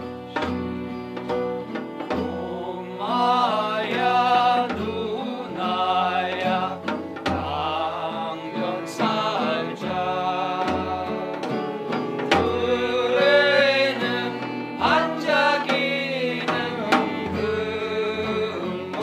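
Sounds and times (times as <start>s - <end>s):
acoustic guitar strummed: 0.0s - 19.0s
voices singing together: 2.0s - 19.0s.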